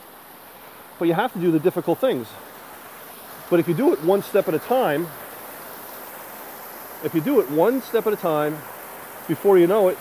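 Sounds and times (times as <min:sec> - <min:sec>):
water running over stones: 0:00.0 - 0:10.0.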